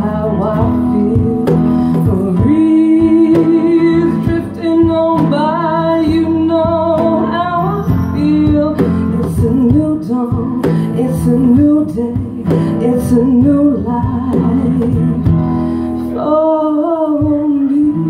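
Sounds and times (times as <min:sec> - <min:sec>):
guitar strumming: 0:00.0 - 0:18.0
woman singing slow melody: 0:00.0 - 0:18.0.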